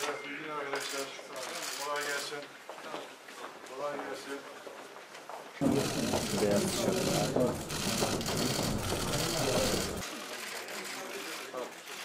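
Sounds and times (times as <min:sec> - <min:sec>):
man speaking: 0:05.6 - 0:10.0.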